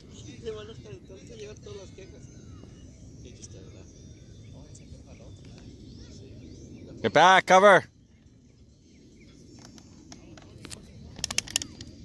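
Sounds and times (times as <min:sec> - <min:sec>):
distant voices: 0:00.0 - 0:12.0
low steady background noise: 0:00.0 - 0:12.0
sharp clicks: 0:10.6 - 0:11.9.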